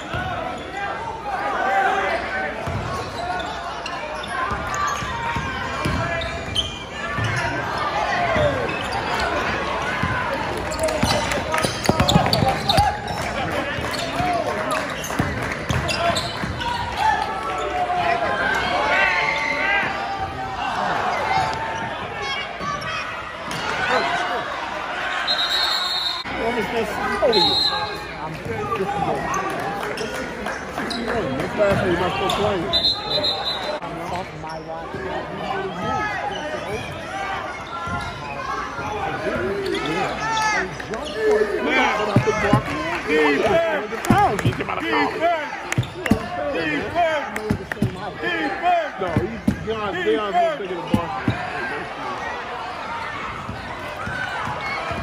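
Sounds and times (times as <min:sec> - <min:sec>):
spectators talking and calling out: 0:00.0 - 0:55.0.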